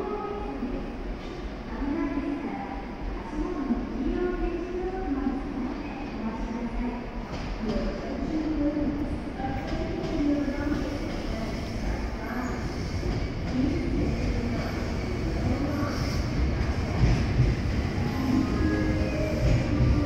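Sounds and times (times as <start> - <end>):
electric train rumbling past: 10.8 - 20.0.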